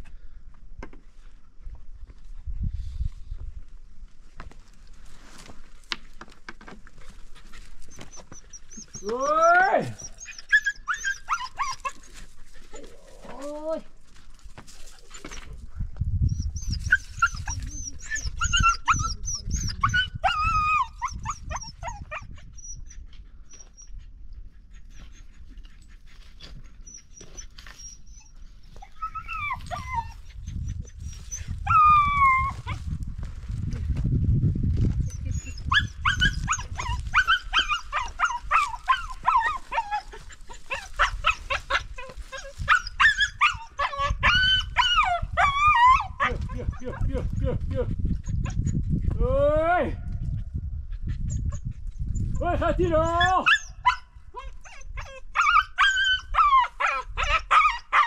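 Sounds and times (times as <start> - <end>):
dog whining: 7.9 - 12.1, 16.3 - 23.9, 26.5 - 32.8, 35.0 - 46.9, 53.1 - 58.0.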